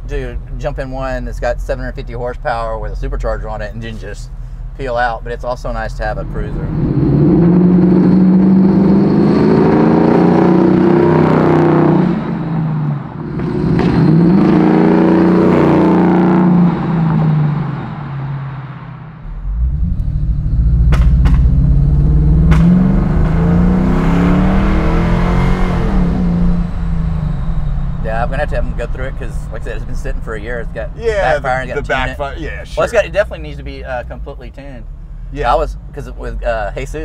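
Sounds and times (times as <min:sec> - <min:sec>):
car engine accelerating hard: 0:06.2 - 0:37.0
engine backfire pops: 0:13.3 - 0:14.3, 0:20.8 - 0:21.7, 0:22.4 - 0:23.4.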